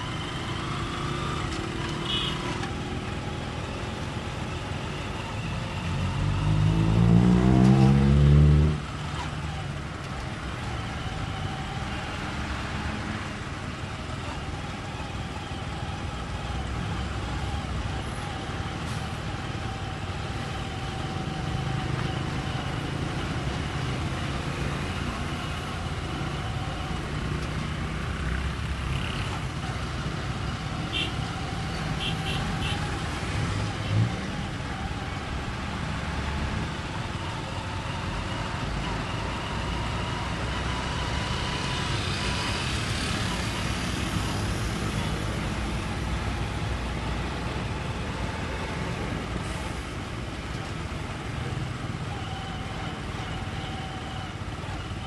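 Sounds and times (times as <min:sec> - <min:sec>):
vehicle engines passing: 0:00.0 - 0:55.0.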